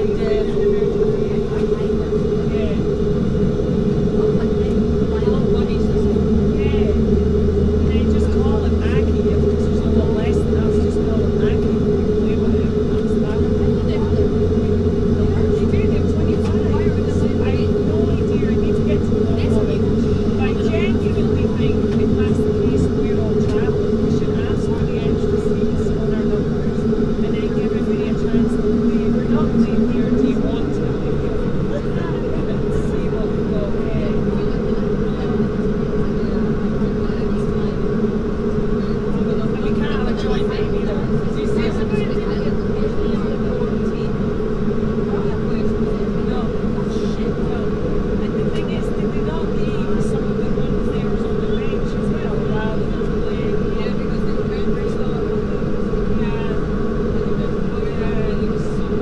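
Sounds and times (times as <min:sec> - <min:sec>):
turboprop engines droning: 0:00.0 - 0:59.0.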